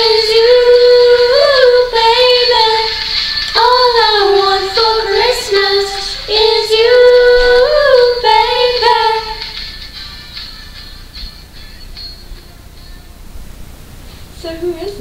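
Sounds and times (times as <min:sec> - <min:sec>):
woman singing pop song: 0:00.0 - 0:09.6, 0:14.4 - 0:15.0
backing music: 0:00.0 - 0:15.0.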